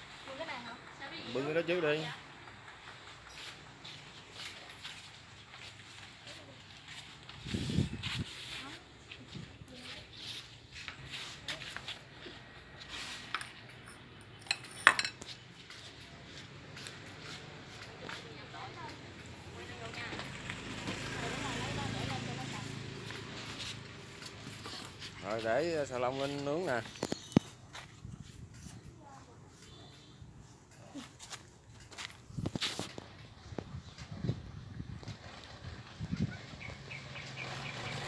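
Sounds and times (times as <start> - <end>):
ceramic bowls clinking: 13.4 - 15.3.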